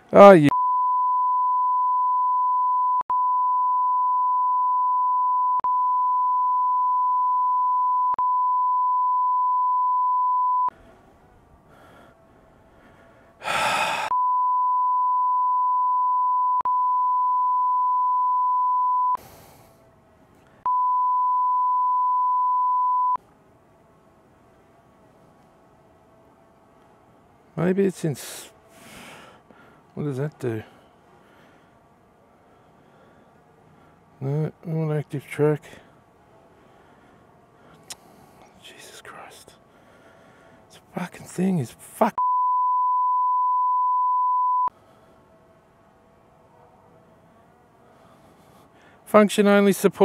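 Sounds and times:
high censor beep: 0:00.5 - 0:10.7, 0:14.1 - 0:19.2, 0:20.7 - 0:23.2, 0:42.2 - 0:44.7.

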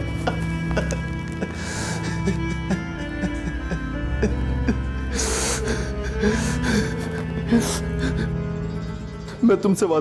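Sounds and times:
background music: 0:00.0 - 0:10.0
man sobbing breaths: 0:00.2 - 0:08.5.

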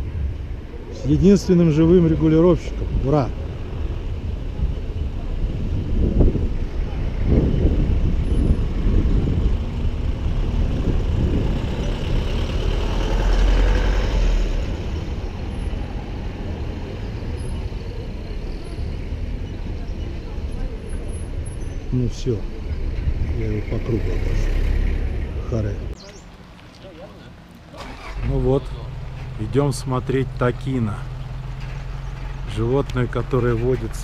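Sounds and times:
vehicle engines running: 0:00.0 - 0:34.0
vehicle passing close: 0:01.8 - 0:17.8, 0:22.7 - 0:34.0.

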